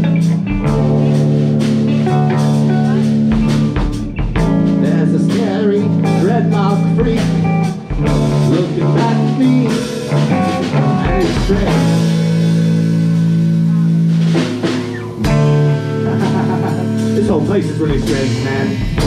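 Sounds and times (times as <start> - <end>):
drum kit: 0.0 - 19.0
electric guitars: 0.0 - 19.0.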